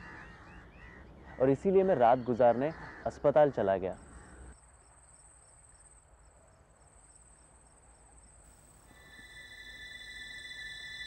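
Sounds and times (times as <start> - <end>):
crickets chirping: 4.0 - 11.0.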